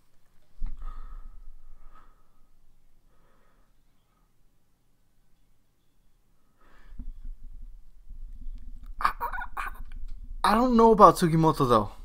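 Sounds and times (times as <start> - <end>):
man laughing: 9.0 - 10.0.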